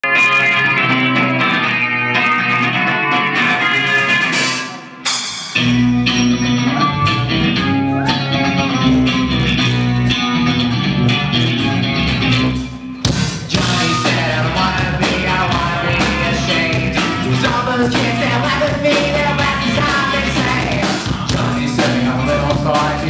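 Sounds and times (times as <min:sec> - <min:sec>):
bass guitar: 0:00.0 - 0:23.0
drums: 0:00.0 - 0:23.0
electric guitar: 0:00.0 - 0:23.0.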